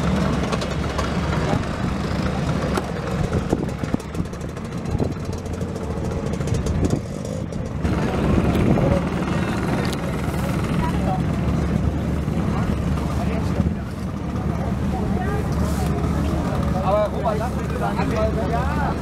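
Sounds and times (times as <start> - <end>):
crowd voices: 0.0 - 19.0
scooter engines running: 0.0 - 19.0.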